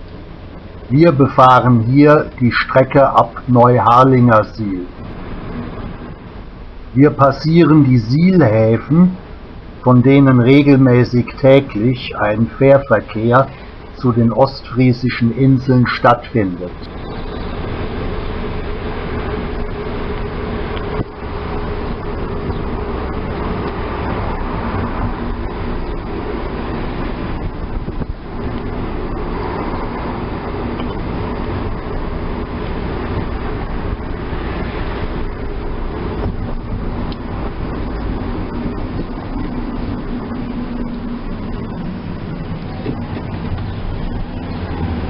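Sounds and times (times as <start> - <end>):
car engine and road noise: 0.0 - 45.0.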